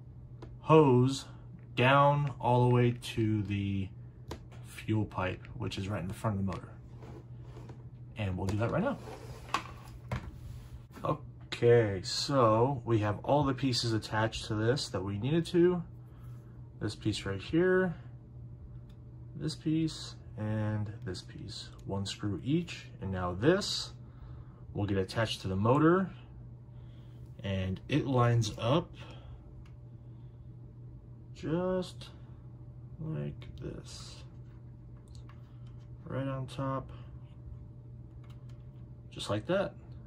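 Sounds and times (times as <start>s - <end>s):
faint low hum: 0.0s - 40.0s.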